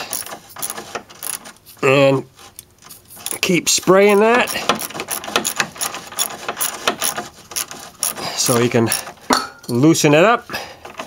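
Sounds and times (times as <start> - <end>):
wrench clicking on bolt: 0.0 - 1.4, 3.2 - 9.1.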